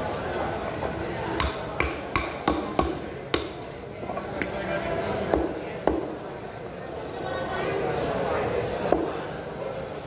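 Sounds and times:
knife chopping onto block: 1.4 - 3.5.

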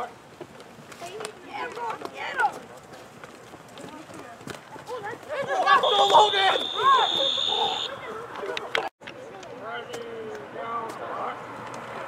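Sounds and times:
distant shouts: 5.3 - 8.3.

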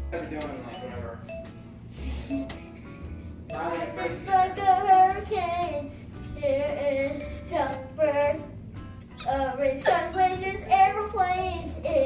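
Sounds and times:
young girl singing: 3.6 - 8.6, 9.2 - 12.0.

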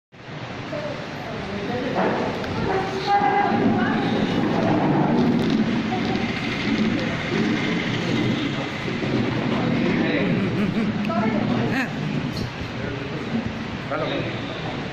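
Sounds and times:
indistinct voices talking: 0.8 - 14.9.

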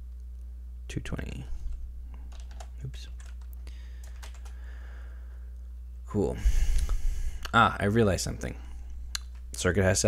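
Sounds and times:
keyboard keys tapping: 2.3 - 4.6.

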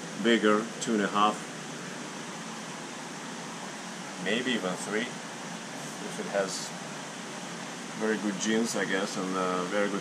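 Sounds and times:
aquarium water bubbling: 0.0 - 10.0.

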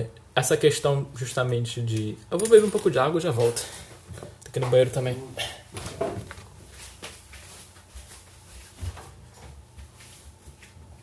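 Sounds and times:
footsteps walking away: 6.2 - 11.0.

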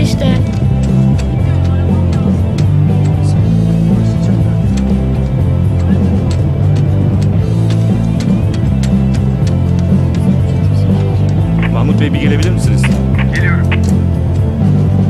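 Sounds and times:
loud music with deep bass: 0.0 - 15.0
percussion hits: 0.0 - 15.0.

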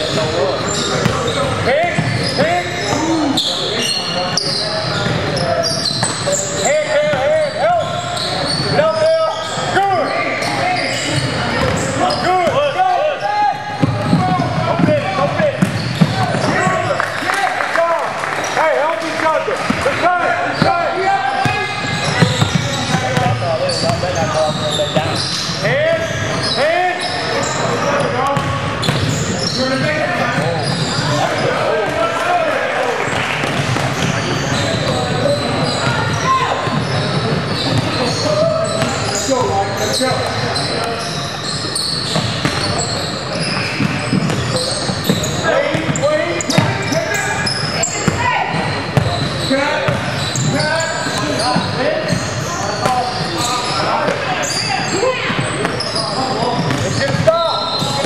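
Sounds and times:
sneaker squeaks: 0.0 - 17.3, 18.4 - 32.2, 33.0 - 58.0.

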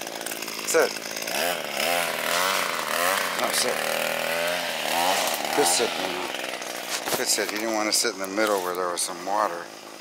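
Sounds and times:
gas trimmer engine revving: 0.0 - 10.0.

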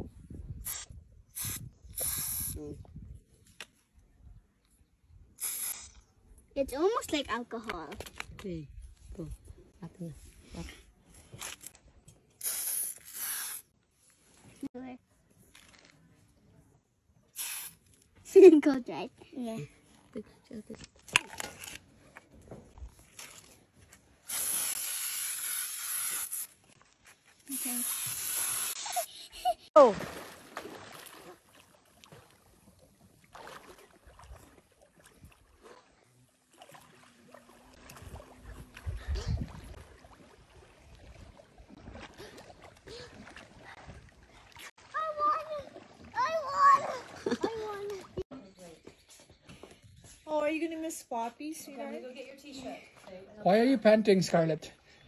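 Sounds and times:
aerosol spray hissing: 1.4 - 2.6, 5.4 - 5.9, 12.4 - 13.6, 17.4 - 17.8, 24.3 - 26.6, 27.5 - 29.1.

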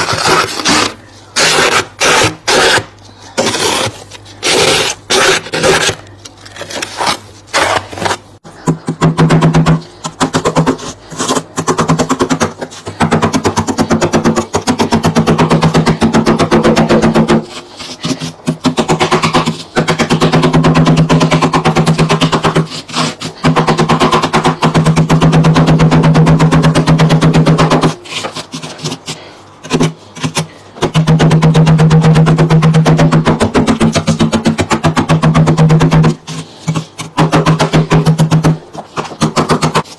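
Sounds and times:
plastic scraper rasping on frost: 0.0 - 9.0, 9.7 - 25.1, 27.4 - 30.6.

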